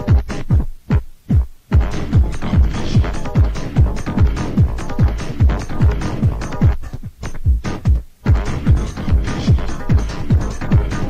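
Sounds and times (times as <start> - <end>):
kick drum beating: 0.0 - 11.0
techno music: 0.0 - 11.0.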